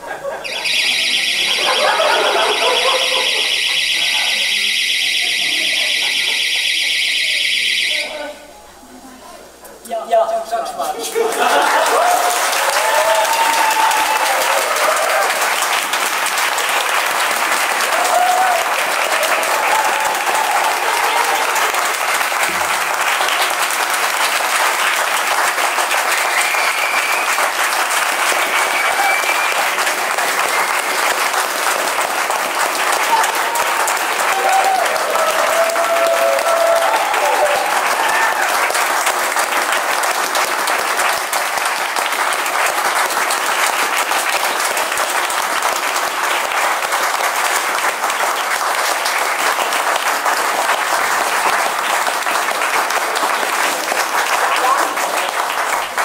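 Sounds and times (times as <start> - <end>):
audience applauding: 0.0 - 8.0, 11.0 - 56.0
voices calling out: 0.2 - 8.6.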